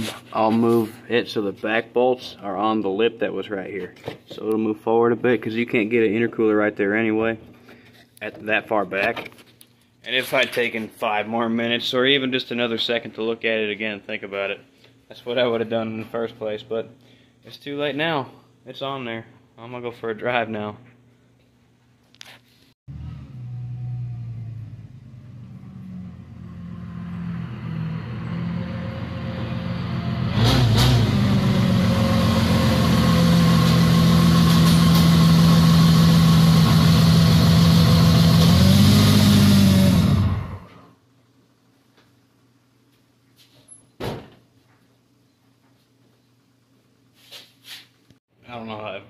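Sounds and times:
car engine revving: 22.9s - 40.7s.

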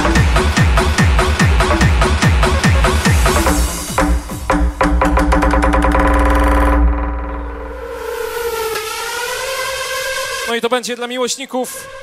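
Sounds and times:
electronic club music: 0.0s - 12.0s
wavering synth tone: 5.8s - 9.9s.

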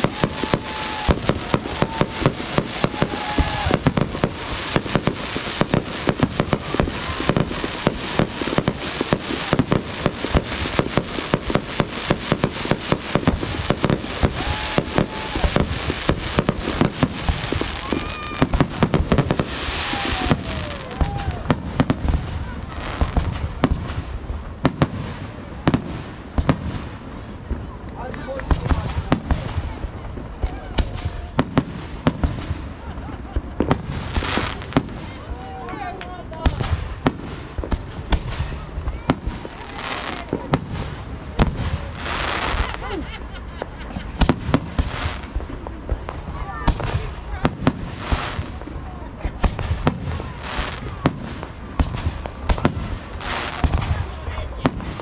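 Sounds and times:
fireworks bangs and crackles: 0.0s - 55.0s.

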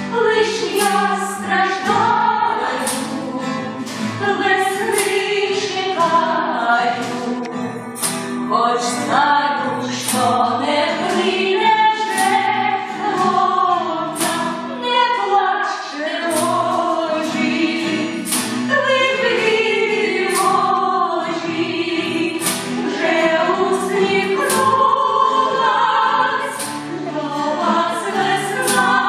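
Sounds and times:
woman singing a tango: 0.0s - 7.8s, 8.5s - 29.0s
strummed acoustic guitars: 0.0s - 29.0s.

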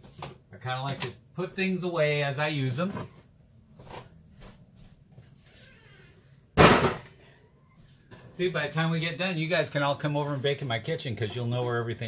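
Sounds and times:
loud bang: 6.6s - 7.1s.

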